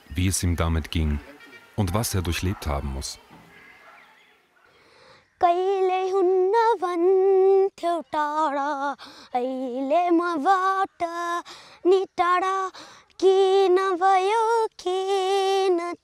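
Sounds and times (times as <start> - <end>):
boy singing unaccompanied lament: 5.4 - 16.0.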